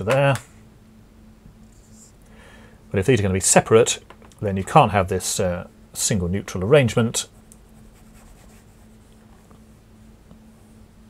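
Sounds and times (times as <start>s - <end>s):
faint steady hum: 0.0s - 11.0s
eraser rubbing on whiteboard: 7.6s - 9.1s.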